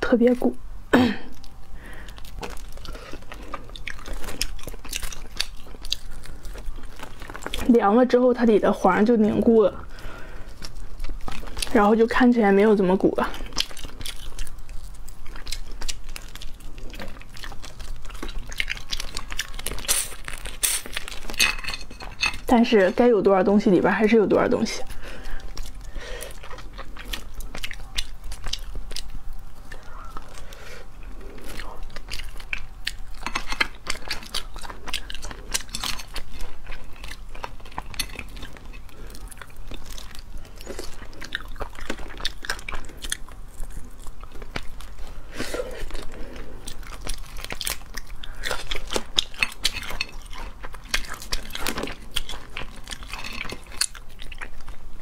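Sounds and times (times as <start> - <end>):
biting and chewing: 1.3 - 55.0
lobster shells cracking: 13.4 - 22.5, 25.0 - 45.0, 45.9 - 55.0.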